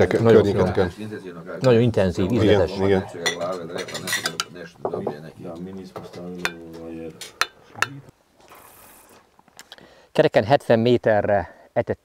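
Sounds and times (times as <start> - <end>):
forks and plates clinking: 3.2 - 4.6
faint hiss: 4.1 - 12.0.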